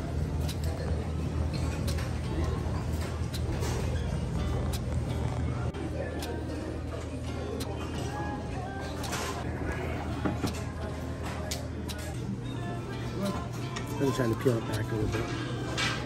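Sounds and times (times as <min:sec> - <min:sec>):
murmur of voices: 0:00.0 - 0:16.0
background music: 0:04.2 - 0:16.0.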